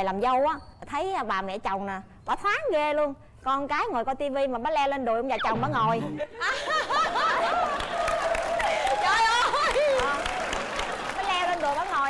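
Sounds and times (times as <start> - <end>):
people laughing loudly: 6.0 - 8.1.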